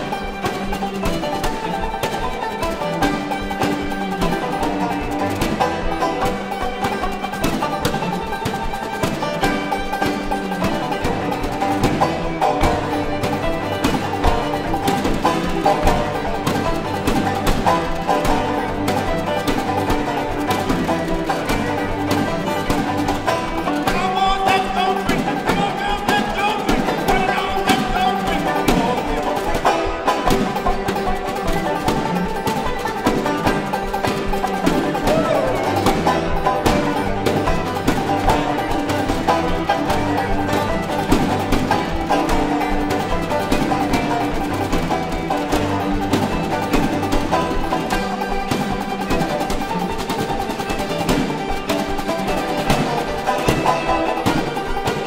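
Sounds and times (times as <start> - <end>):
banjo picking: 0.0 - 55.0
fiddle melody: 0.0 - 55.0.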